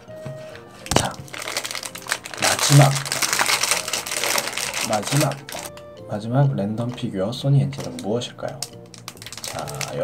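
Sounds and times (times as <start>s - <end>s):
foil wrapper crinkling: 0.8s - 5.8s, 7.8s - 10.0s.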